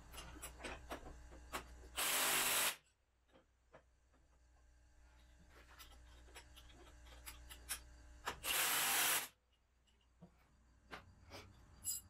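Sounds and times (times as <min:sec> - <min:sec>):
cordless driver running a bolt: 0:02.0 - 0:02.8, 0:08.4 - 0:09.3
small metal clicks and clinks: 0:11.8 - 0:12.0.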